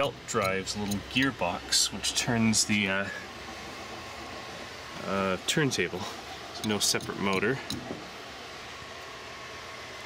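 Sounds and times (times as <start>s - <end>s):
microwave oven hiss: 0.0s - 10.0s
person speaking: 5.0s - 7.9s.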